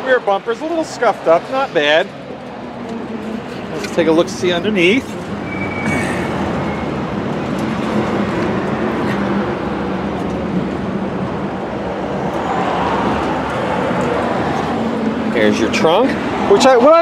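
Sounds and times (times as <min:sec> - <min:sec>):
motor vehicle hum with hiss: 0:01.4 - 0:16.4.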